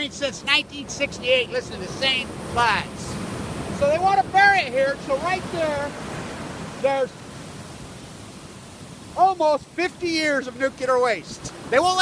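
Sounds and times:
surf breaking on sandy beach: 0:00.0 - 0:12.0.

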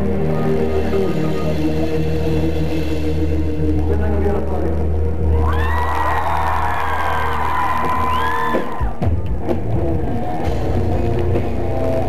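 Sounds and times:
deep bass drone: 0:00.0 - 0:08.5, 0:09.1 - 0:12.0
rock band sustained chords: 0:00.0 - 0:12.0.

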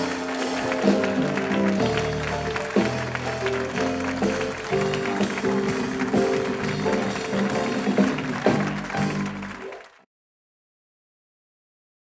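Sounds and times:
upbeat live band music: 0:00.0 - 0:09.9.

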